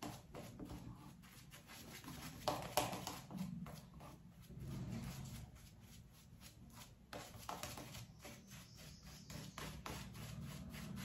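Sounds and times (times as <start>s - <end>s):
shaving brush strokes on face: 0.0s - 11.0s.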